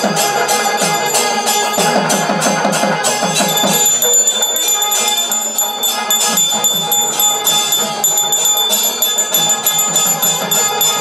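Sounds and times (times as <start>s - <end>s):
hand bell ringing rapidly: 0.0s - 11.0s
traditional music: 0.0s - 11.0s.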